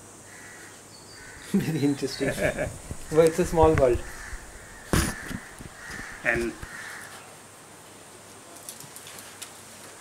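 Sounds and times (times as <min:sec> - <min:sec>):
sharp knock: 0:04.8 - 0:06.1.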